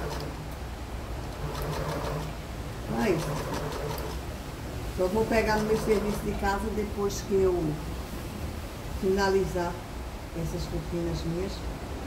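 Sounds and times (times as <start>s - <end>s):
sewing machine motor humming: 0.0s - 0.4s, 1.3s - 4.2s, 5.5s - 6.4s.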